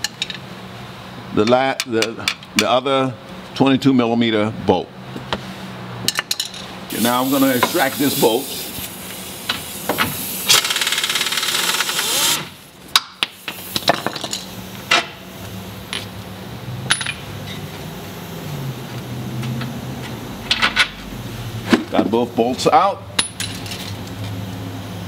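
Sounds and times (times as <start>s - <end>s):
pneumatic impact wrench hammering: 6.9s - 15.2s.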